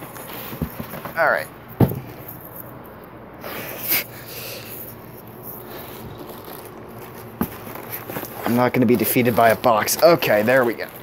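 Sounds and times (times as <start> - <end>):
plastic bag rustling and crinkling: 4.8 - 11.0.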